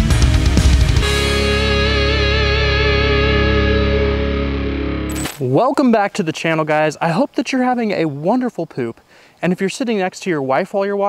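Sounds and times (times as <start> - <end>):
distorted electric guitar chord: 0.0 - 5.3.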